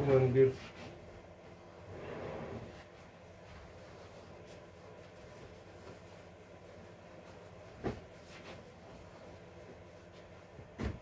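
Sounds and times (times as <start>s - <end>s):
low background hum: 0.0s - 11.0s
dull thump: 10.7s - 11.0s.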